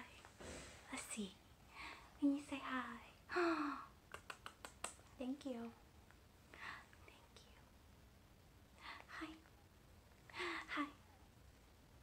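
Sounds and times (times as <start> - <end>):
soft breathy whisper: 0.0 - 5.8, 6.5 - 7.8, 8.7 - 11.3.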